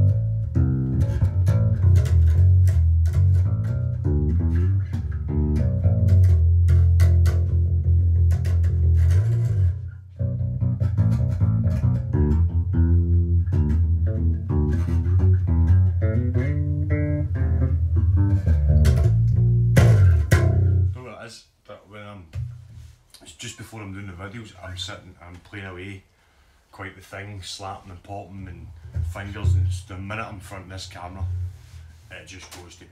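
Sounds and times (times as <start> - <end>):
electric bass plucked notes: 0.0 - 21.0, 22.3 - 22.7, 28.5 - 32.1.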